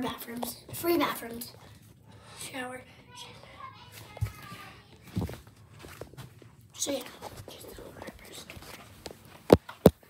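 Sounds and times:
child speaking: 0.0s - 1.6s, 2.4s - 5.3s, 6.8s - 8.5s
faint children's voices: 2.4s - 5.9s.

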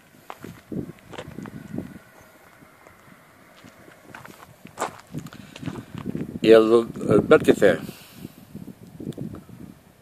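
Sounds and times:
footsteps on gravel: 0.0s - 6.4s.

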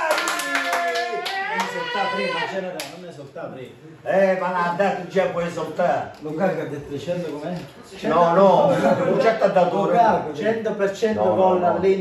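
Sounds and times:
fast hand-clapping: 0.0s - 1.8s
long held shout: 0.0s - 2.6s
men cheering: 0.0s - 2.7s.

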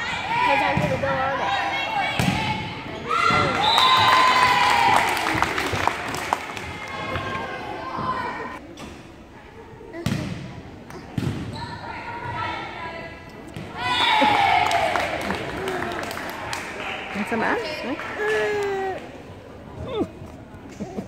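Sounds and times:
girls and spectators shouting and cheering: 0.0s - 8.6s, 11.8s - 19.2s
volleyball thumps: 11.0s - 11.6s.

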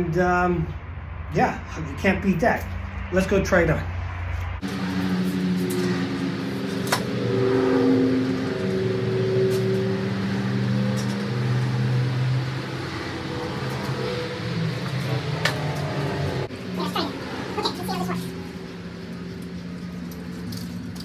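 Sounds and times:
low droning hum: 0.0s - 21.0s.

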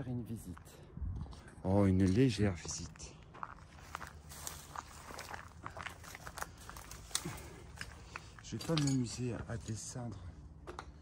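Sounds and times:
footsteps on rough ground: 0.0s - 10.8s
dry brush crunching: 3.3s - 9.4s.

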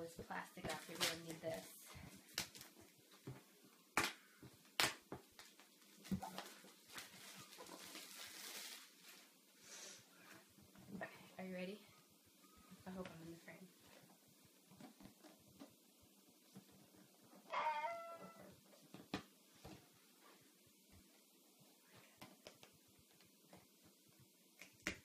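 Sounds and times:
plastic wrapping crinkling: 0.3s - 3.2s, 4.1s - 9.6s.

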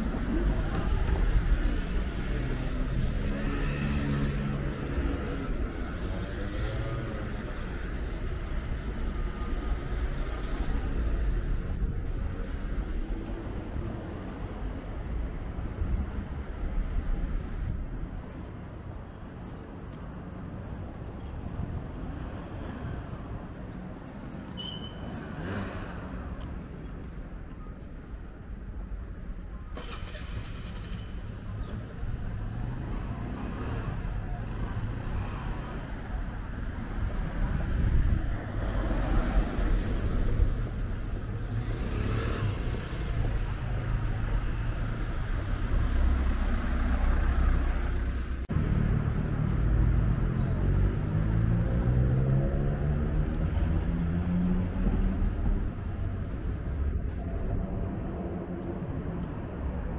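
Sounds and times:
vehicles passing: 0.0s - 59.9s
vehicle engine accelerating: 41.4s - 55.7s.

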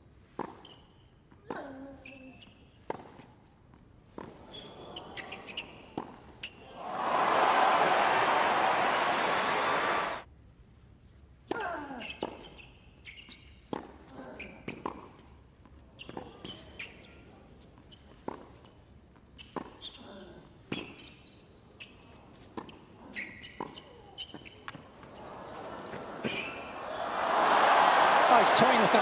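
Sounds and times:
shoes squeaking on court: 0.3s - 1.3s, 2.0s - 3.4s, 4.2s - 6.6s, 12.0s - 20.1s, 20.7s - 26.8s
crowd applause: 6.6s - 10.2s, 25.2s - 29.0s.

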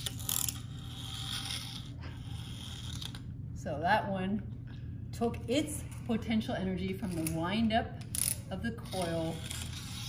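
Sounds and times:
clockwork toy car whirring: 0.0s - 3.2s, 8.1s - 10.0s.

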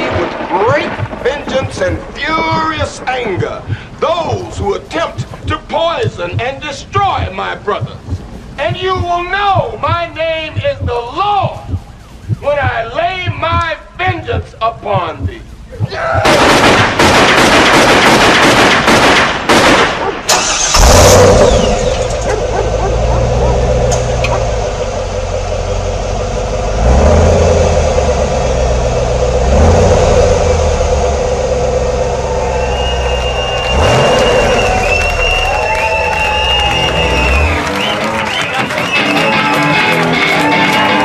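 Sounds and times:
rapid loud cracks: 0.0s - 14.4s, 16.2s - 41.0s
car engine revving: 20.3s - 39.0s
high whistling tones: 20.4s - 41.0s.

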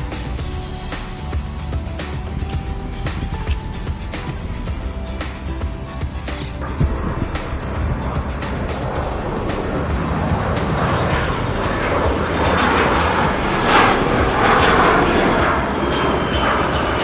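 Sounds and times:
background music: 0.0s - 17.0s
jet aircraft flying overhead: 0.0s - 17.0s.

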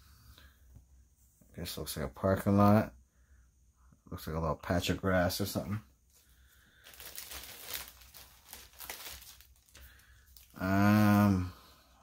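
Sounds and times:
plastic bags crinkling: 6.1s - 10.8s
sharp plastic crackles: 6.8s - 10.6s.

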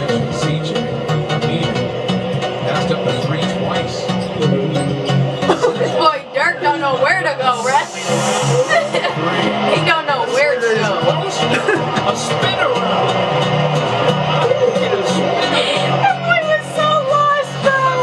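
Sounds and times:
music with stepping bass line: 0.0s - 9.8s, 10.8s - 16.0s.

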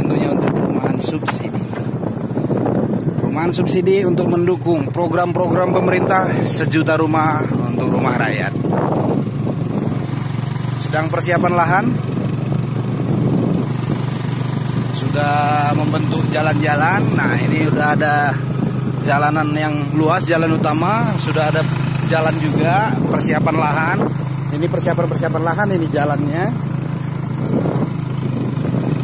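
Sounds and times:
engine humming: 0.0s - 29.0s.

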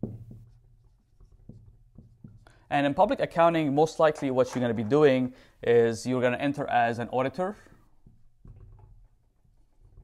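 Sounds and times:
marker scratching on whiteboard: 0.0s - 4.6s.

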